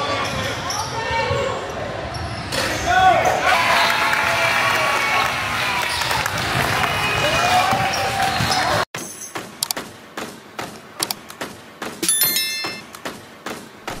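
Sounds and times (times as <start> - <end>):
voices in a gym: 0.0 - 6.1
brief ringing chime: 12.0 - 12.9.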